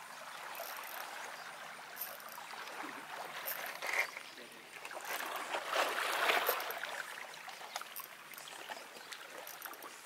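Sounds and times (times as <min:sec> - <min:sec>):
waves lapping on rocks: 0:00.4 - 0:10.0.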